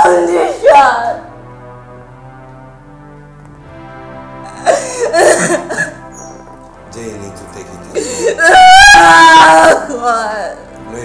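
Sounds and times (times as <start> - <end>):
film soundtrack music: 0.0 - 11.0.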